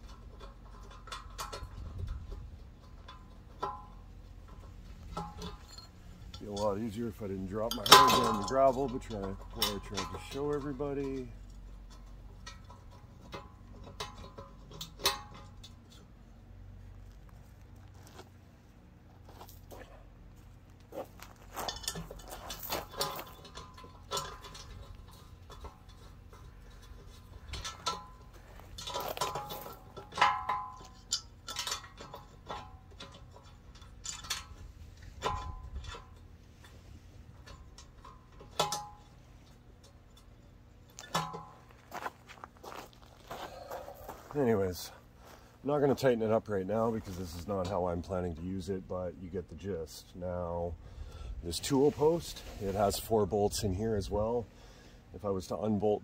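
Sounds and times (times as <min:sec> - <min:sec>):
heavy steel parts clinking: 0:00.0 - 0:16.2, 0:20.9 - 0:49.8.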